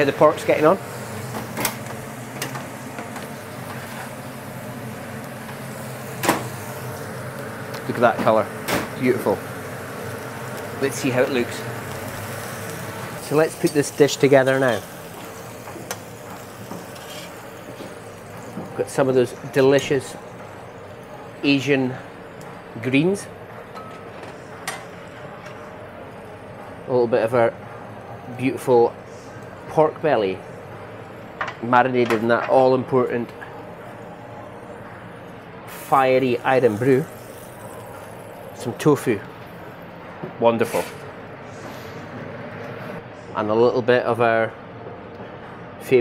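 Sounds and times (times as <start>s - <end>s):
kitchen machinery hum: 0.0s - 46.0s.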